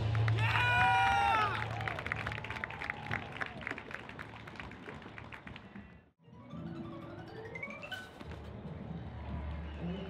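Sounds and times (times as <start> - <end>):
scattered clapping: 0.0 - 5.8.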